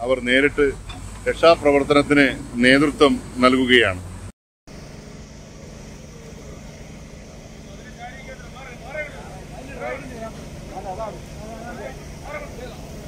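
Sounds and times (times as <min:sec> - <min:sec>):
excavator diesel engine idling: 0:00.0 - 0:13.0
faint crowd voices: 0:05.6 - 0:13.0.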